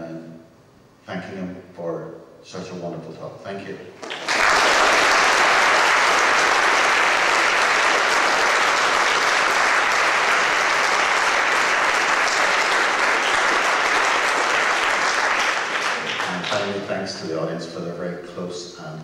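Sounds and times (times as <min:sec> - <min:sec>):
large audience applauding: 0:04.0 - 0:16.9.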